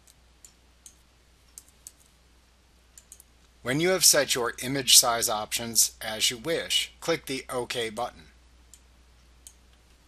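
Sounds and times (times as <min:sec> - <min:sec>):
keyboard and mouse clicks: 0:03.0 - 0:03.3.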